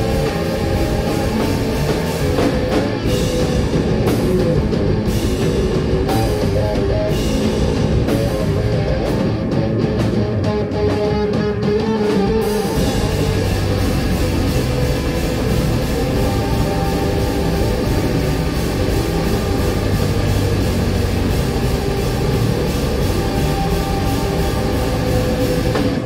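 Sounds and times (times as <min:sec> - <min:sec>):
live rock band playing: 0:00.0 - 0:26.0.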